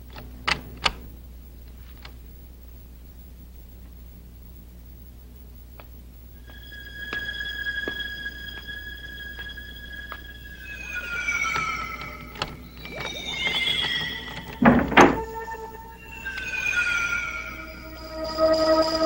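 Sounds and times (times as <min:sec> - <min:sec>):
synthesizer tones sliding downward: 0:06.4 - 0:19.0.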